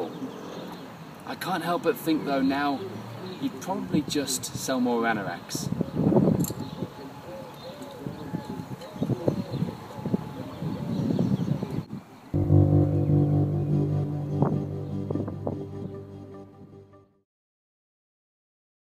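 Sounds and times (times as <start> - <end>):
outdoor background noise: 0.0 - 14.1
background music with sustained chords: 12.4 - 17.2.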